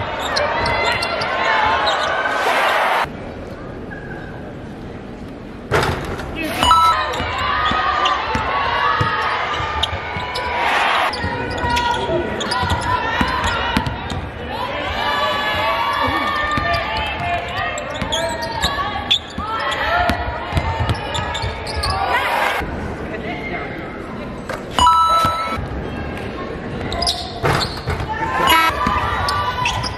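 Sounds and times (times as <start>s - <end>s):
players and spectators voices: 0.0s - 29.9s.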